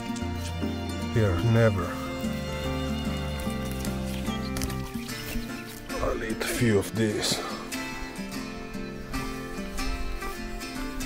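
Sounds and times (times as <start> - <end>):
acoustic guitar song: 0.0 - 11.0.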